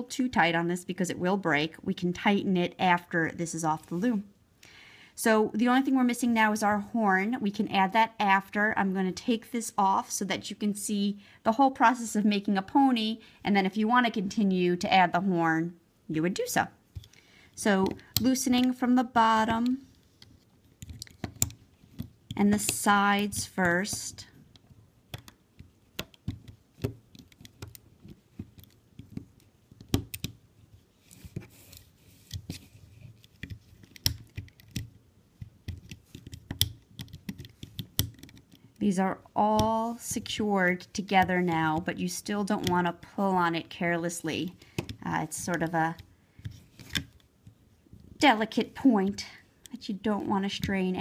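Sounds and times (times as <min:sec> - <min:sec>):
rubber bands clicking and rubbing: 0:16.9 - 0:43.3, 0:44.5 - 0:48.2.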